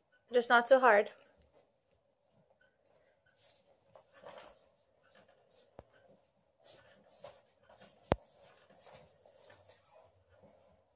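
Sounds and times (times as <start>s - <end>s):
rustling and shuffling movements: 1.1s - 10.9s.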